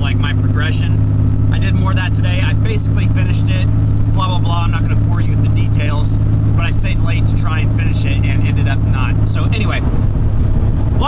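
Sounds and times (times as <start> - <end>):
vehicle engine drone and road noise: 0.0 - 11.0.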